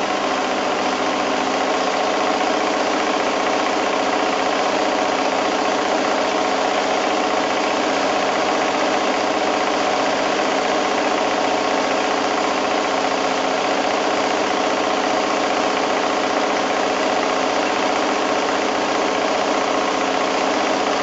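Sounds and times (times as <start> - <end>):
sewing machine running: 0.0 - 21.0.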